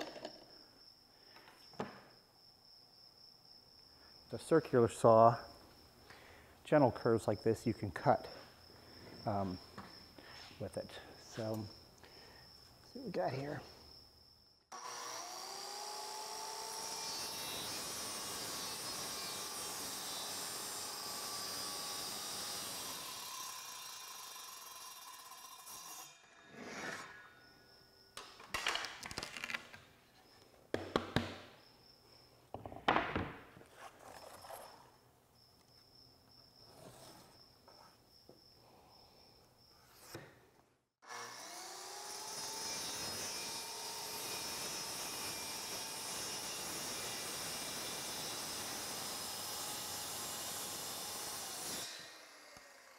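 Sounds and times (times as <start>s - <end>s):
plywood pieces knocking and clattering: 0.0s - 0.6s, 28.2s - 29.9s, 32.5s - 33.6s
circular saw cutting plywood: 14.7s - 27.4s, 41.0s - 52.9s.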